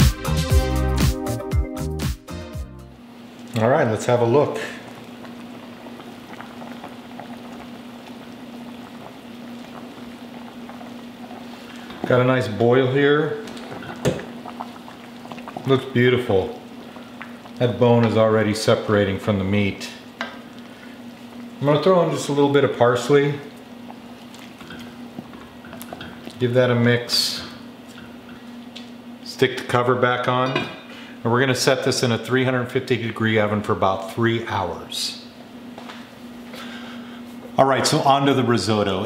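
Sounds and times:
low steady hum: 2.8 - 39.0
liquid bubbling in a pot: 3.2 - 31.2.

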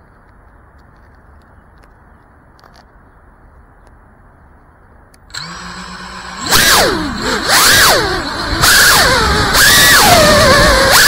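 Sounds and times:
quadcopter motors whining: 5.3 - 11.0.

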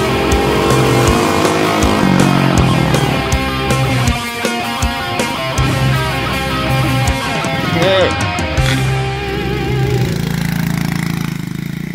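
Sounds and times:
quad bike engine idling: 0.0 - 3.9, 8.3 - 11.9
rock music: 0.0 - 10.3.

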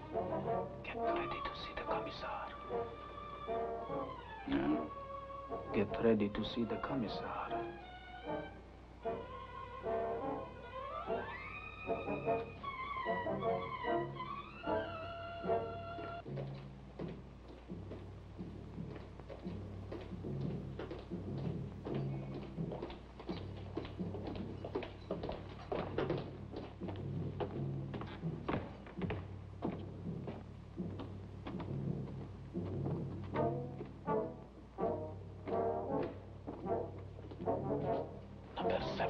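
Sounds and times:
orchestral low brass: 0.0 - 16.2, 33.3 - 39.0
footsteps knocking: 15.4 - 38.8.

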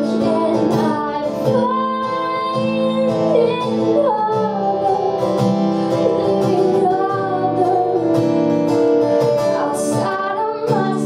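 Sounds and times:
acoustic guitar strumming: 0.0 - 11.0
woman singing: 0.0 - 11.0.

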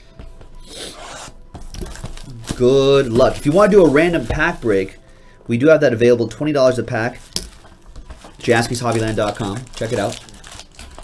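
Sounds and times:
plastic wrap crinkling: 1.6 - 5.2, 6.6 - 11.0.

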